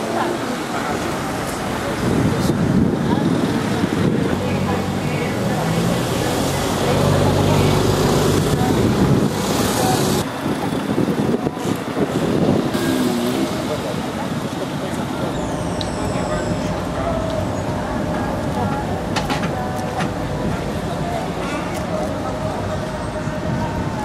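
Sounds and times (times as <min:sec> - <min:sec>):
car and truck engines running: 0:00.0 - 0:24.0
people's voices: 0:00.0 - 0:24.0.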